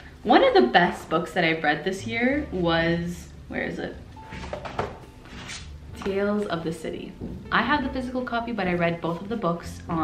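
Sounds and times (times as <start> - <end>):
objects knocking and rustling: 4.3 - 6.2.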